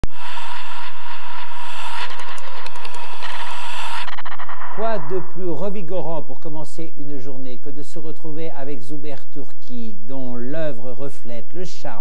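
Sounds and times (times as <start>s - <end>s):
choppy stuttering tone: 0.0s - 8.1s
steady whistle-like tone: 3.1s - 6.5s.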